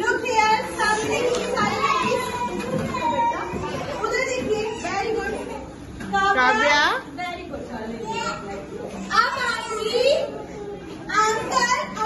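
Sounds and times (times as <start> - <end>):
young children chattering: 0.0 - 12.0.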